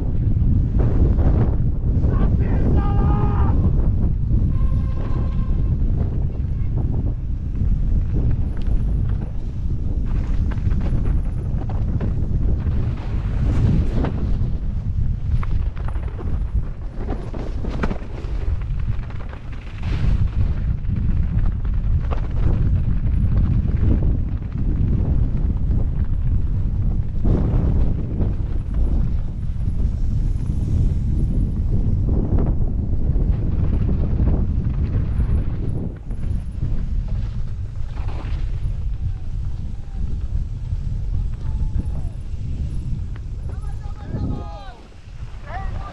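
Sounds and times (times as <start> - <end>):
mountain bike rumble: 0.0 - 45.9
wind buffeting microphone: 0.0 - 45.9
bike knocking and clattering: 4.4 - 43.8.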